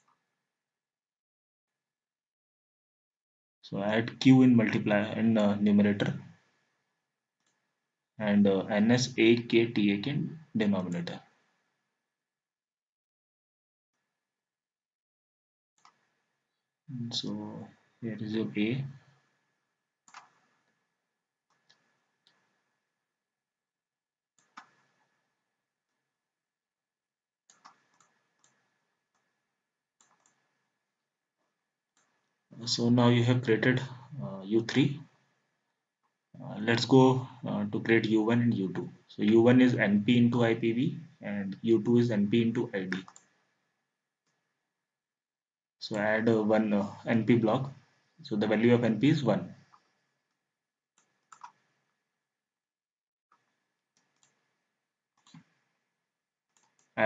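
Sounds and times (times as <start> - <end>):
computer mouse clicks: 20.1 - 20.4, 24.4 - 25.0, 27.5 - 29.3, 30.0 - 30.6, 42.8 - 43.3, 51.0 - 51.6, 54.0 - 54.4, 56.5 - 57.0.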